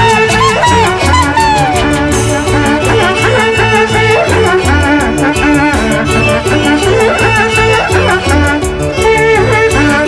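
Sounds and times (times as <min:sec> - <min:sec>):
plucked harp bass: 0:00.0 - 0:10.0
violin melody: 0:00.0 - 0:10.0
steady dance beat: 0:00.4 - 0:02.1.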